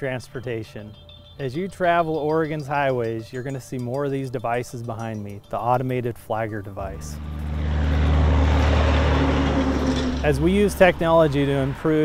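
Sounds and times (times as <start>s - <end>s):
low engine hum with rushing: 6.9s - 12.0s.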